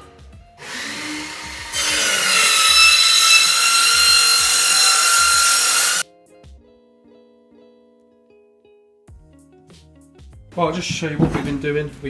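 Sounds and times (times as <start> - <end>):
power tool cutting steel: 0.6 - 6.0.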